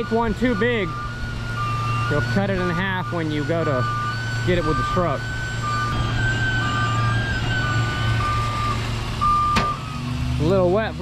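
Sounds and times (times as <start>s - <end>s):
high whine: 0.0s - 10.0s
reversing alarm beeping: 0.0s - 10.7s
diesel engine running: 0.0s - 11.0s.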